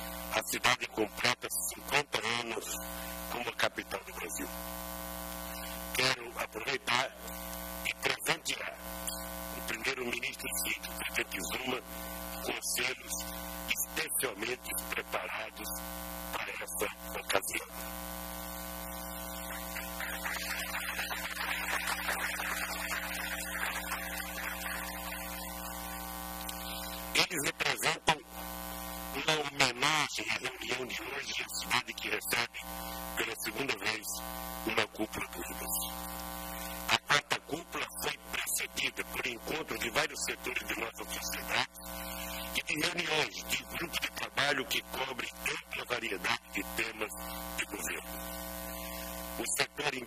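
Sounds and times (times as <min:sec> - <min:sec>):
electrical buzz: 0:00.0 - 0:50.0
person speaking: 0:05.6 - 0:17.9, 0:19.3 - 0:28.3, 0:36.9 - 0:48.2.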